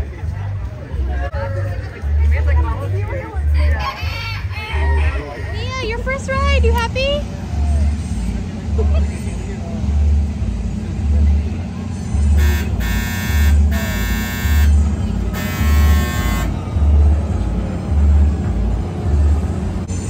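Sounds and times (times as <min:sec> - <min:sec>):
heavy bass beat over loudspeakers: 0:12.2 - 0:17.4
harsh buzzing tone: 0:12.3 - 0:16.5.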